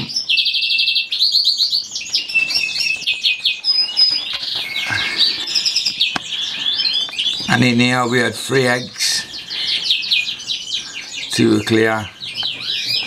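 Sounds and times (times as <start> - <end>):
finches chirping and trilling: 0.0 - 13.0.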